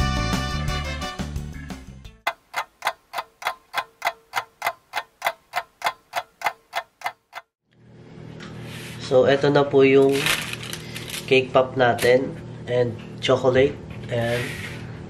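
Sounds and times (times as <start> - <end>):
background music: 0.0 - 2.2
clock ticking: 2.3 - 7.5.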